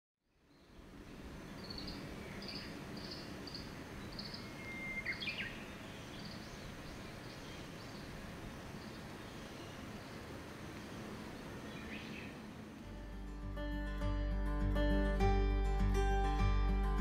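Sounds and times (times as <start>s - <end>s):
birds chirping: 0.3s - 13.1s
whistled bird notes: 1.6s - 8.1s.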